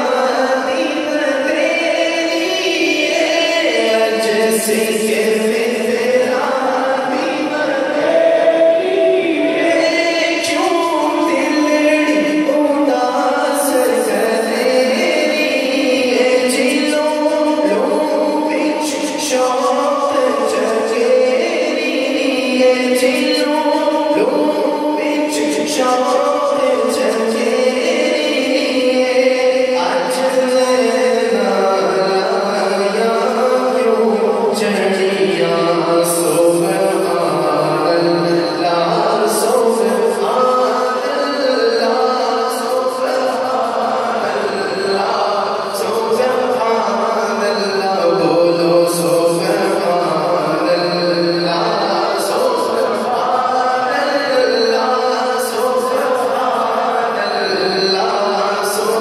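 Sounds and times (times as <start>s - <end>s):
man singing into a microphone: 0.0s - 59.0s.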